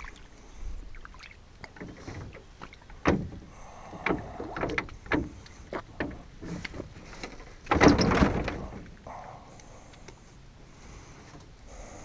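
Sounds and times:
knocks against small boat: 0:03.0 - 0:03.4.

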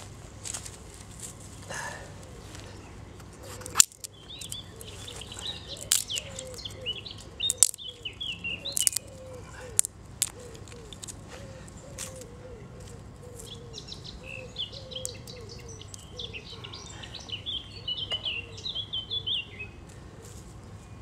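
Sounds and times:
small birds chirping: 0:01.6 - 0:21.0
twigs snapping: 0:03.4 - 0:11.2, 0:12.0 - 0:12.3, 0:14.9 - 0:16.1.

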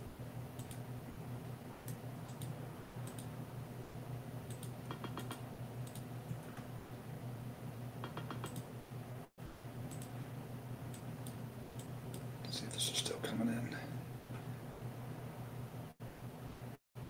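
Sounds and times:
low electrical hum: 0:00.0 - 0:17.0
mouse and keyboard clicks: 0:04.5 - 0:06.1, 0:08.0 - 0:08.7.

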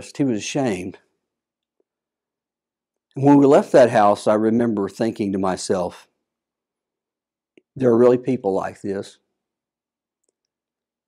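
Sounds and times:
man speaking: 0:00.0 - 0:01.0, 0:03.2 - 0:06.0, 0:07.8 - 0:09.2.

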